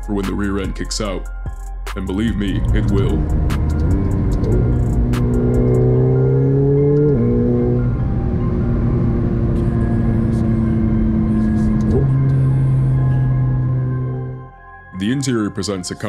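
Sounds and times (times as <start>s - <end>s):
background music: 0.0s - 16.0s
car engine accelerating: 2.4s - 14.5s.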